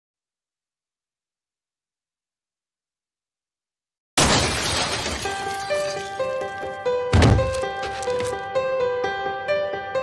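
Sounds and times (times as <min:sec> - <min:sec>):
crash with shattering glass: 0:04.2 - 0:08.4.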